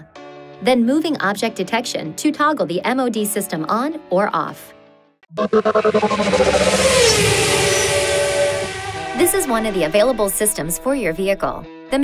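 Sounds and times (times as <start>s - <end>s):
car engine revving: 5.3s - 9.8s.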